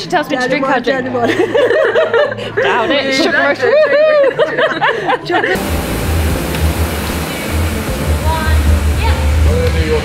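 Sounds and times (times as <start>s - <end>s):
air bike fans whooshing: 5.6s - 10.0s
music with heavy bass: 5.6s - 10.0s.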